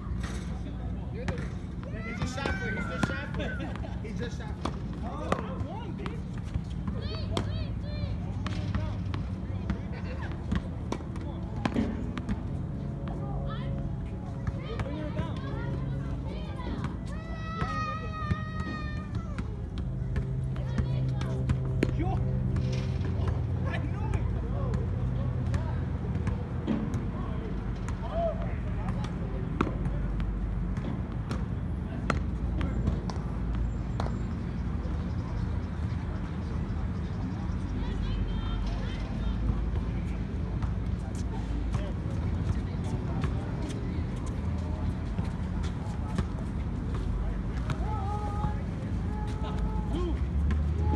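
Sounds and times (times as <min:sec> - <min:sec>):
faint indistinct voices: 0:00.0 - 0:50.9
road traffic rumble: 0:00.0 - 0:50.9
tennis balls struck and bouncing: 0:01.2 - 0:03.9, 0:04.5 - 0:13.2.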